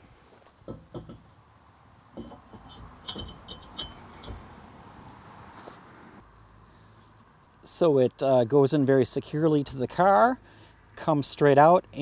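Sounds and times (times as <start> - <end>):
metal clanks and clinks: 0.7 - 1.3, 2.2 - 4.4
metal tube scraping: 2.2 - 4.5.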